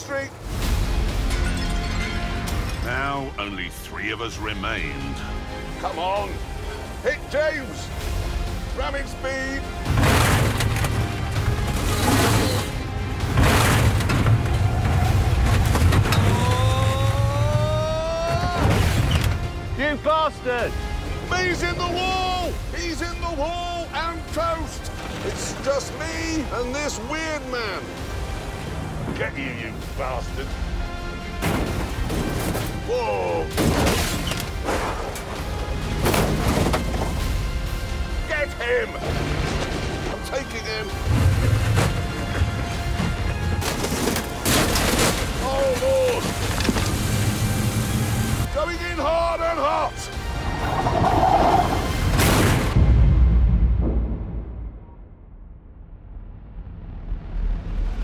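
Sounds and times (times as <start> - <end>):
music soundtrack: 0.3 - 58.0
vehicles crashing: 9.6 - 19.6, 38.2 - 48.5
metal bodywork crashing: 9.9 - 11.0, 11.7 - 16.6.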